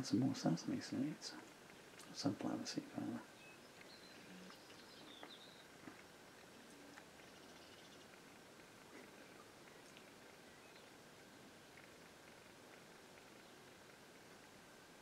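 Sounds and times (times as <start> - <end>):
faint high bird chirps: 3.2 - 5.8, 7.2 - 8.1, 9.0 - 11.4.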